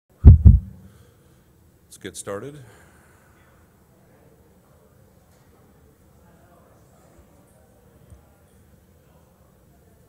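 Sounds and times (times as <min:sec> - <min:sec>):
microphone thumps: 0:00.1 - 0:00.9.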